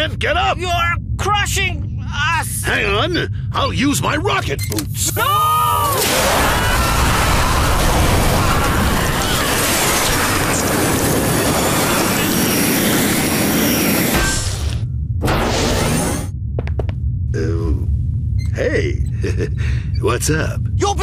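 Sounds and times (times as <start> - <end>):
cartoon explosion blast and rumble: 5.9 - 16.3.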